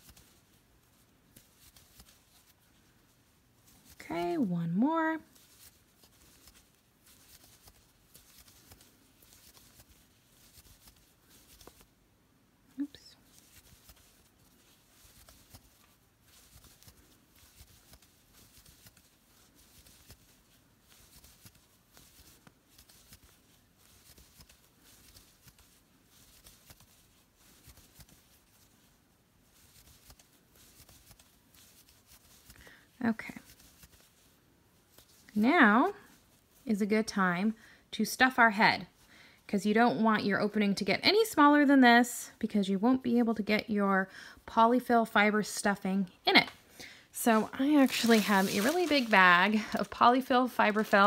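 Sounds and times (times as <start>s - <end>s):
yarn and crochet hook rustling: 0.0s - 39.1s, 44.7s - 51.0s.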